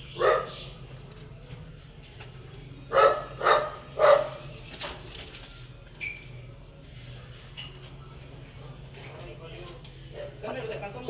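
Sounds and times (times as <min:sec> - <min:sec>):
dog barking: 0:00.1 - 0:00.8, 0:02.9 - 0:04.4.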